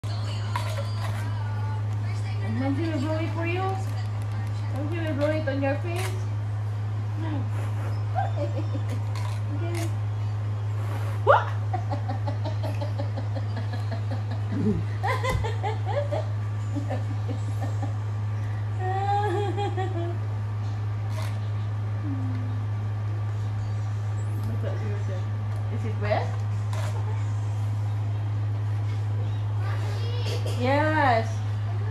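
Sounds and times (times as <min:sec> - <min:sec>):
steady low hum: 0:00.0 - 0:31.9
laughter and giggling: 0:11.7 - 0:18.0, 0:19.0 - 0:20.2.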